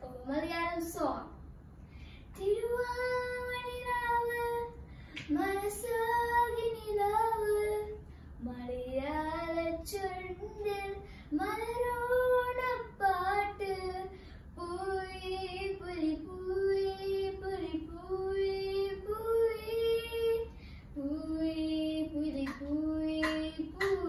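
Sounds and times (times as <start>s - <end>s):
girl singing unaccompanied: 0.0s - 1.4s, 2.3s - 24.0s.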